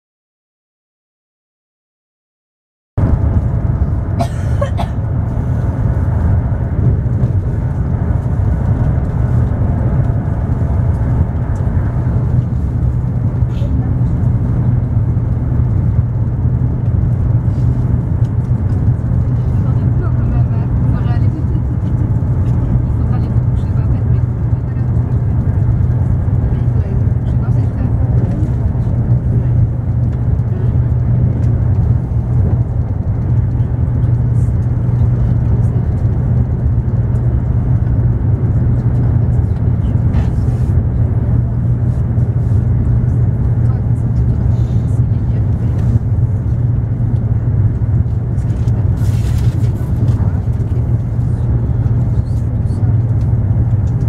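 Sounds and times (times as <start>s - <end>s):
train rumble from inside carriage: 3.0s - 54.0s.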